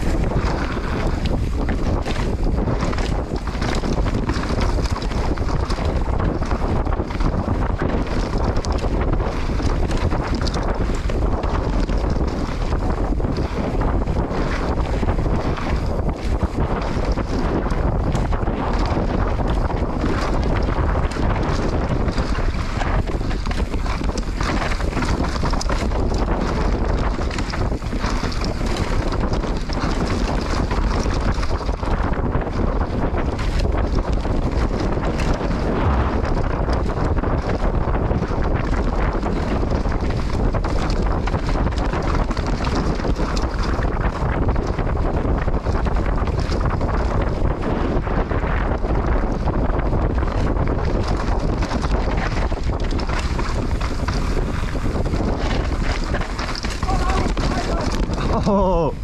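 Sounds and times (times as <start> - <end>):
bike rattling clicks: 0.0 - 59.0
tyre noise on dirt: 0.0 - 59.0
wind rushing over microphone: 0.0 - 59.0.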